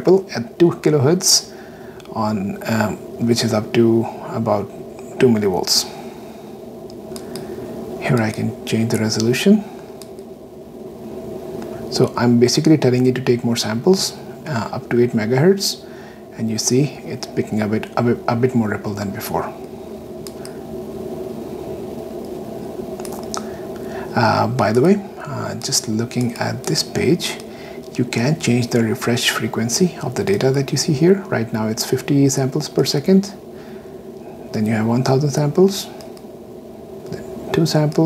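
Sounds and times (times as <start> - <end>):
steady low hum: 0.0 - 38.0
steady low room noise: 0.0 - 38.0.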